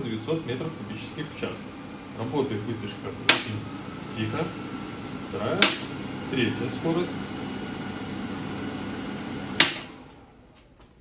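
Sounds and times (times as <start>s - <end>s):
range hood fan running: 0.0s - 11.0s.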